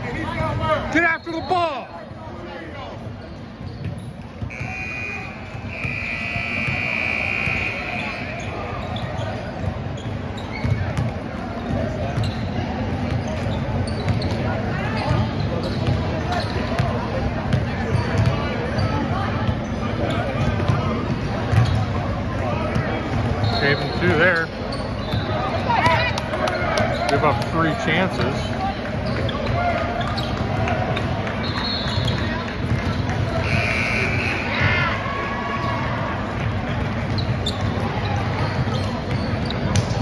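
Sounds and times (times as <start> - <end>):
high buzzer tone: 4.5 - 8.3.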